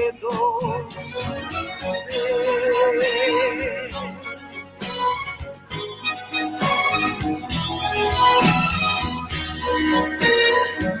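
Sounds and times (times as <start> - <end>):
instrumental backing music: 0.0 - 11.0.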